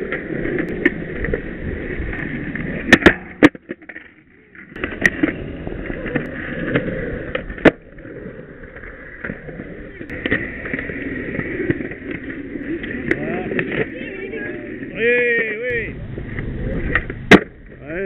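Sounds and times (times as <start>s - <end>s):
skateboard clacking: 0.0s - 18.0s
skateboard wheels rolling on concrete: 0.0s - 18.0s.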